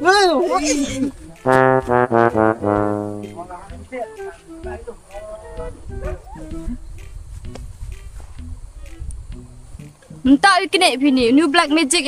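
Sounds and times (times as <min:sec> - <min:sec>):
quiet background music: 0:00.0 - 0:12.0
brass chord: 0:01.4 - 0:04.7
faint voices: 0:03.2 - 0:06.8.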